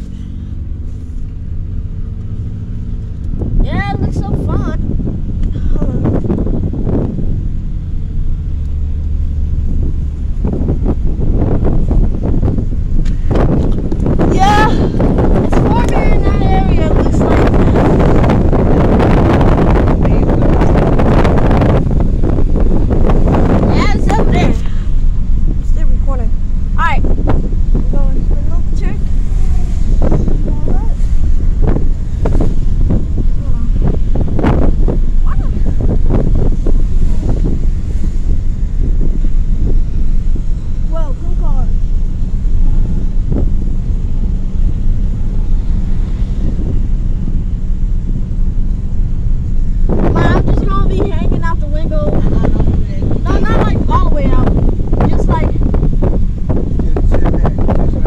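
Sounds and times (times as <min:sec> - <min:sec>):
low rumble inside car: 0:00.0 - 0:58.0
wind buffeting microphone: 0:00.0 - 0:58.0.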